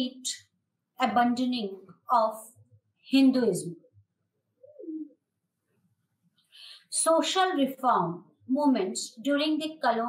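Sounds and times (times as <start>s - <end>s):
pigeon cooing: 4.6s - 5.2s.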